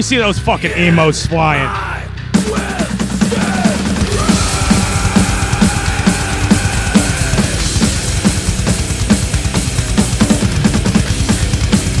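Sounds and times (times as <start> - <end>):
low distorted bass and guitar: 0.0 - 12.0
slow heavy metal music: 0.0 - 12.0.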